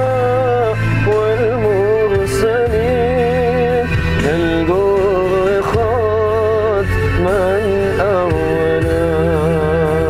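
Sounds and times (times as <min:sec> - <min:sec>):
low instrumental backing: 0:00.0 - 0:10.0
solo voice singing: 0:00.0 - 0:10.0.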